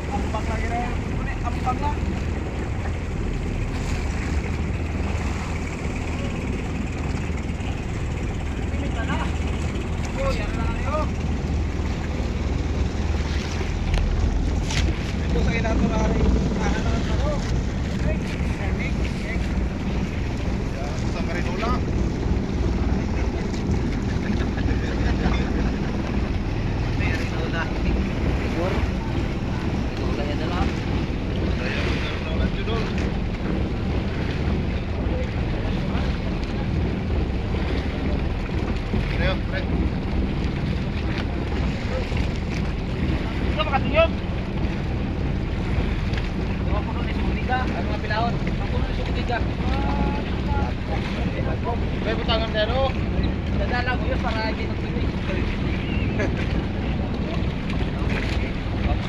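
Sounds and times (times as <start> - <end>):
sea water around boat: 0.0 - 59.0
wind on microphone: 0.0 - 59.0
fishermen shouting: 15.2 - 59.0.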